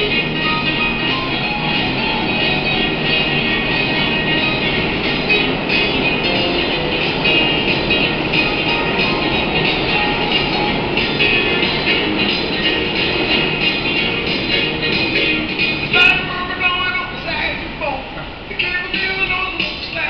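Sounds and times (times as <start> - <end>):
electronic keyboard rock tune: 0.0 - 16.3
subway train noise: 0.0 - 20.0.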